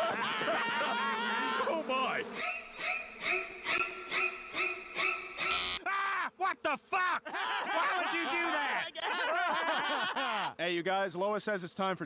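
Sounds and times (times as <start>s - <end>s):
loud electric buzz: 0.8s - 3.6s, 5.4s - 5.8s.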